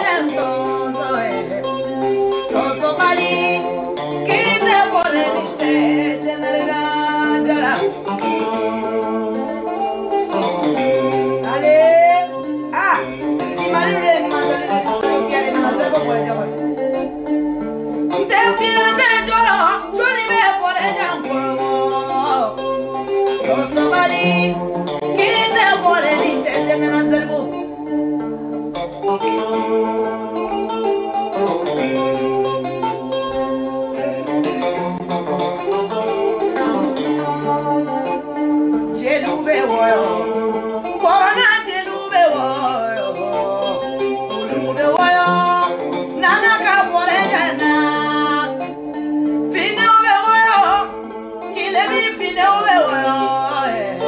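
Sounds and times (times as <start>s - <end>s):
woman singing: 0.0s - 9.5s, 11.4s - 16.6s, 18.1s - 27.7s, 36.2s - 38.2s, 38.8s - 48.8s, 49.5s - 54.0s
instrumental backing: 0.0s - 54.0s
music with held notes: 0.0s - 54.0s
person singing ornamented melody: 2.4s - 9.3s, 13.4s - 16.5s, 39.0s - 48.6s.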